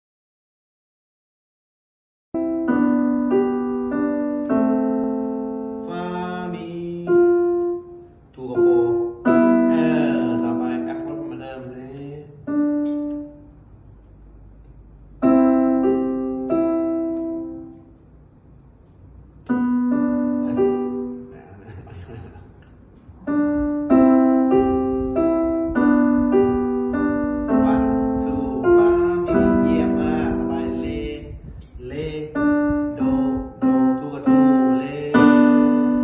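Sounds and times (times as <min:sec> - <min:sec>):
upright piano notes and chords: 0:02.4 - 0:36.0.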